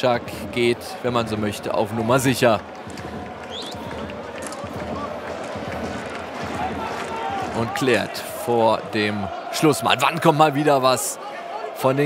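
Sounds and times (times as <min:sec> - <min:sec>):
crowd shouts: 0:00.0 - 0:12.0.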